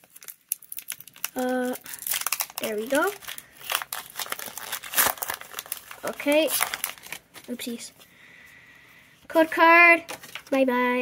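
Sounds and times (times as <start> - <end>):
foil wrapper ripping: 0.0 - 7.6
foil wrapper crinkling: 0.0 - 7.8.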